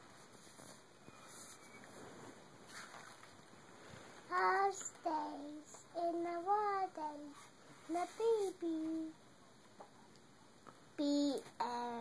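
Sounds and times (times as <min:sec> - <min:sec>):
girl singing: 0:04.3 - 0:09.2, 0:11.0 - 0:12.0.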